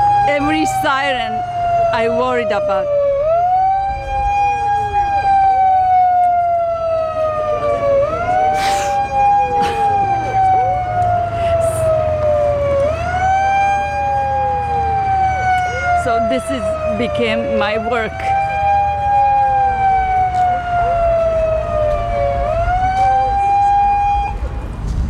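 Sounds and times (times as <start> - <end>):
siren wailing: 0.0 - 24.8.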